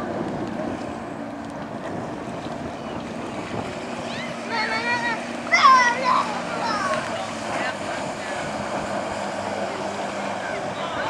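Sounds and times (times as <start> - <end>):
wind noise: 0.0 - 5.5
motorboat engine running: 0.0 - 11.0
rushing water: 0.0 - 11.0.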